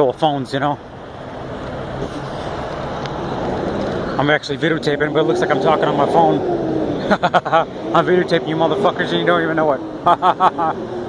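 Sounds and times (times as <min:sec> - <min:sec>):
passing vehicle tyre and engine noise: 0:00.3 - 0:11.0.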